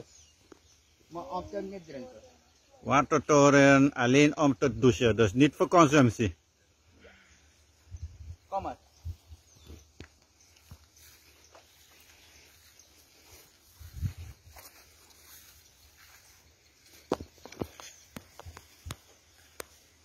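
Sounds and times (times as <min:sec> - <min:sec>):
footsteps through grass and brush: 0:09.0 - 0:20.0.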